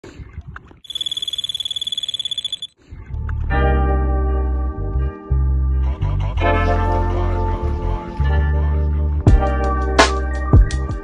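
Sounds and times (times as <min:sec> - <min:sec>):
bite alarm high-pitched beeps: 0:00.9 - 0:02.7
music with sustained chord and bass: 0:03.2 - 0:11.0.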